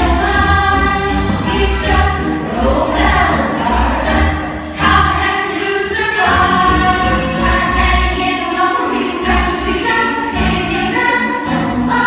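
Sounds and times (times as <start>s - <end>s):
group singing musical number: 0.0s - 12.0s.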